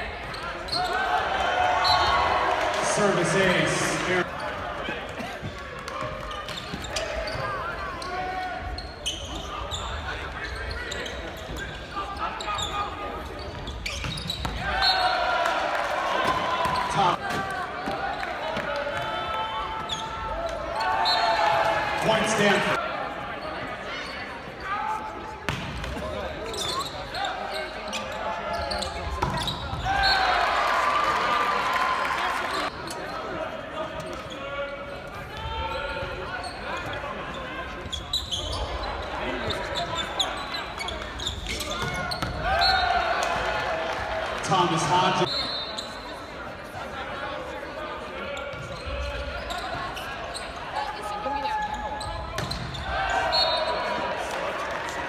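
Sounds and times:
players and spectators shouting: 0.0 - 11.2, 14.2 - 23.2, 41.5 - 45.3, 52.8 - 55.0.

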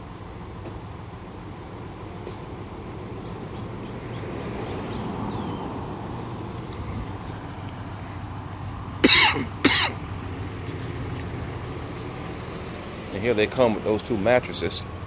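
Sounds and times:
low hum of traffic: 0.0 - 15.0
man coughing: 9.0 - 10.0.

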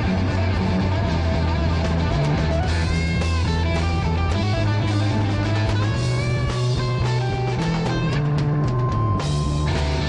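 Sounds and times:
electric bass guitar: 0.0 - 10.0
electric guitar bending notes: 0.0 - 10.0
drums with cymbals: 1.8 - 10.0.

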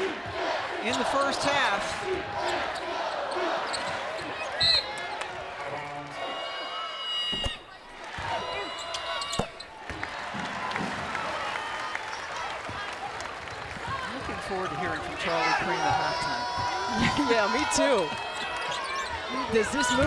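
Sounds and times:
crowd noise: 0.0 - 20.0
shoe squeaks: 3.6 - 5.0, 6.2 - 7.7, 8.4 - 9.7, 18.2 - 20.0.

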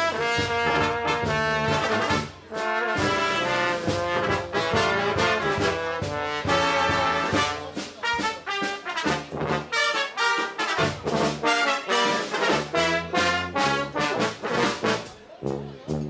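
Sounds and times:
brass band playing: 0.0 - 16.0.

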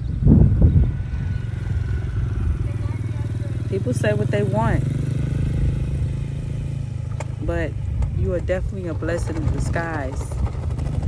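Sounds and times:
engine running with pulsing hum: 0.0 - 11.0.

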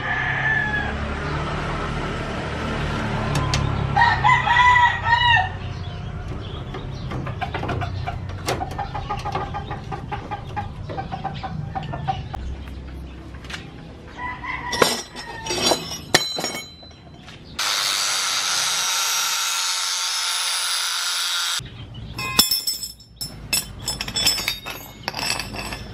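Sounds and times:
rooster crowing: 0.0 - 1.1, 4.0 - 5.6, 14.2 - 15.7
metal parts clicking and tapping: 14.7 - 17.0, 22.2 - 25.9.

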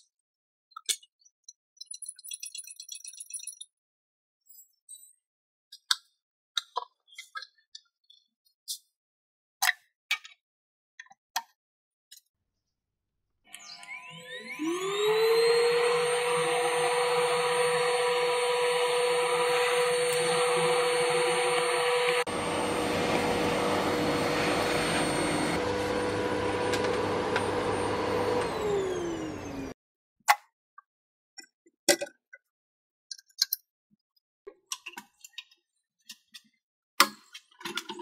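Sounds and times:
vacuum cleaner motor whine: 13.6 - 29.8
nozzle sucking up sawdust: 14.6 - 29.7.

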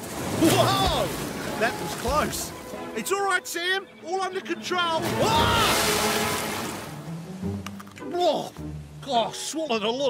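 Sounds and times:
wave crashing and splashing: 0.0 - 2.8, 5.0 - 7.4
light background music: 0.3 - 10.0.

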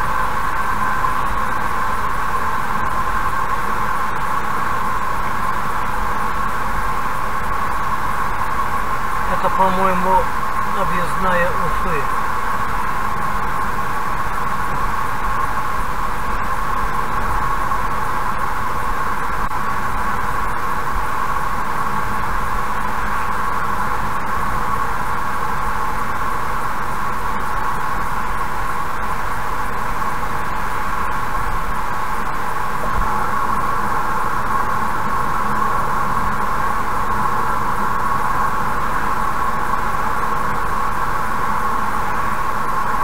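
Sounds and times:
car road and tyre noise: 0.0 - 10.8.

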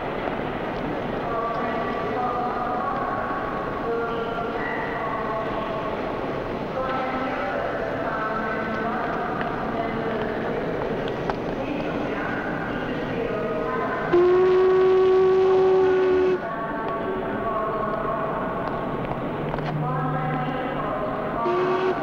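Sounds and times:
steam locomotive whistle: 14.1 - 16.4, 21.4 - 22.0.

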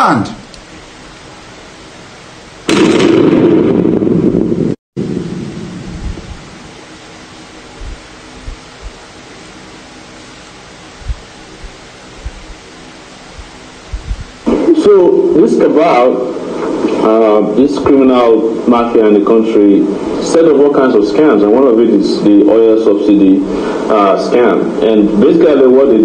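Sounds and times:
steady hiss: 0.0 - 3.4, 4.4 - 26.0
loud rumbling noise: 2.6 - 22.2
low thumps: 2.7 - 6.7, 7.8 - 9.1, 11.0 - 12.6, 13.3 - 14.6.

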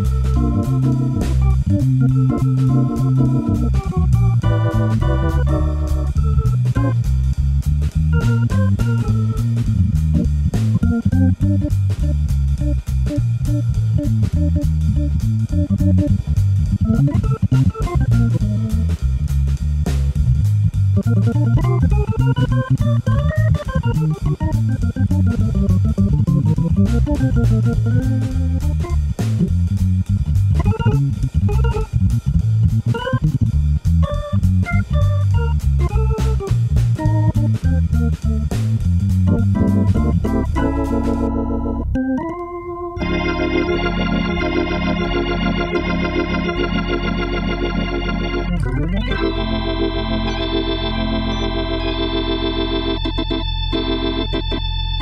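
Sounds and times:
jazz organ playing: 0.0 - 55.0.

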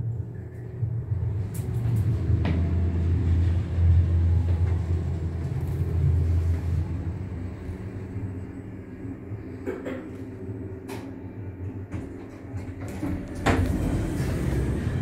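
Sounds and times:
lift travelling low rumble: 0.0 - 15.0.

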